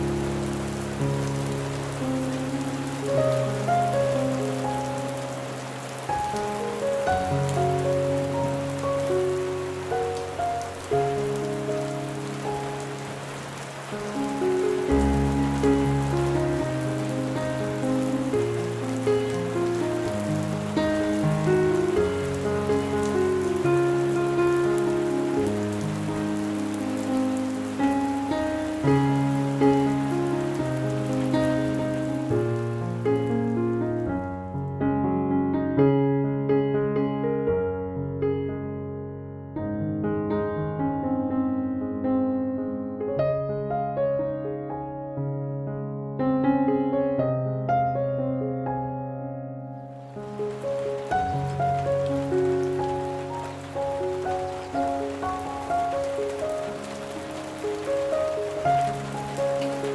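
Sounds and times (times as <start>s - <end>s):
heavy rain on a window: 0.0s - 33.7s, 50.0s - 59.9s
slow instrumental music: 0.0s - 37.4s, 49.8s - 59.9s.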